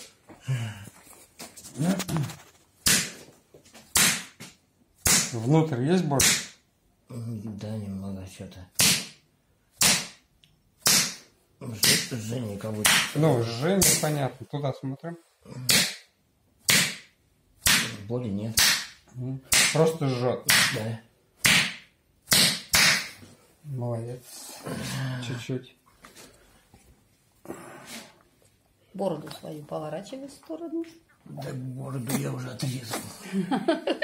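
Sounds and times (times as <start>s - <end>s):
open-handed slap on bare skin: 2.8s - 3.2s, 3.9s - 5.4s, 6.2s - 6.6s, 8.8s - 9.2s, 9.8s - 10.2s, 10.8s - 12.1s, 12.8s - 13.2s, 15.7s - 16.1s, 16.7s - 17.9s, 18.6s - 19.8s, 20.5s - 20.8s, 21.4s - 23.2s.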